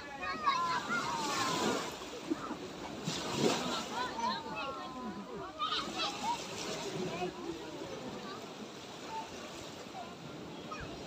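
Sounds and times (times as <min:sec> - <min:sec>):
children's voices: 0:00.0 - 0:11.0
small waves splashing on shore: 0:00.0 - 0:11.0.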